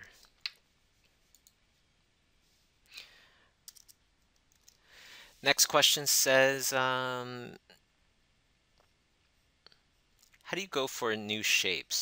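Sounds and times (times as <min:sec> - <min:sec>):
soft breath: 0:02.4 - 0:03.6, 0:04.7 - 0:05.4.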